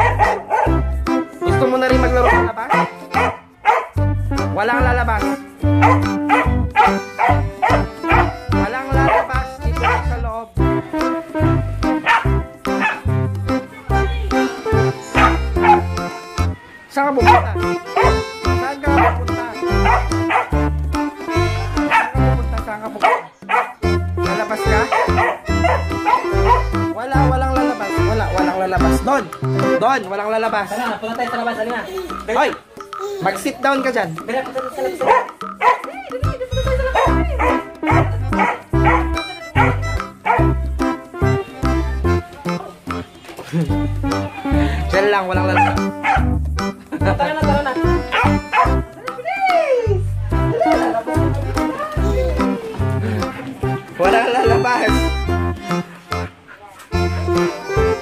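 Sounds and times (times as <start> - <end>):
dog barking: 0.0 - 0.8, 2.2 - 4.0, 5.8 - 8.4, 9.0 - 10.1, 12.0 - 13.0, 15.1 - 15.9, 17.2 - 18.2, 18.9 - 19.2, 19.8 - 20.6, 21.8 - 22.2, 23.0 - 23.8, 24.8 - 26.8, 34.9 - 35.9, 36.9 - 40.5, 45.6 - 46.3, 48.1 - 48.8
music with bass beat: 0.0 - 16.6, 17.2 - 23.0, 23.8 - 58.0.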